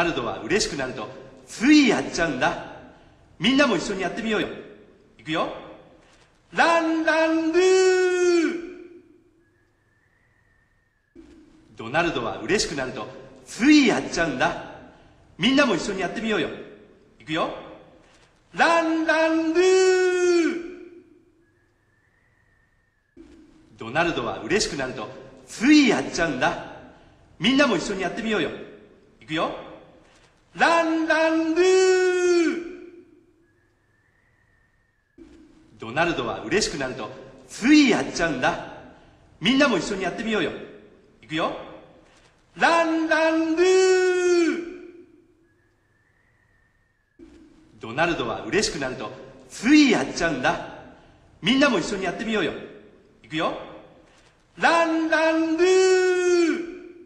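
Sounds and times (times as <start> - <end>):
person speaking: 0.0 - 9.2, 11.2 - 21.2, 23.2 - 33.2, 35.2 - 45.2, 47.2 - 57.0.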